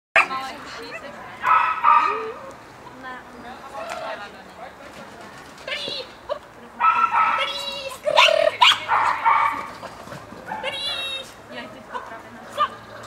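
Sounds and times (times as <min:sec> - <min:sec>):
small dog yapping: 0:06.8 - 0:09.9.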